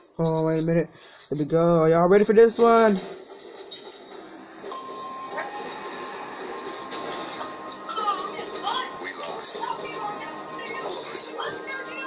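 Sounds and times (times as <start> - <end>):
steady high tone: 4.7 - 12.0.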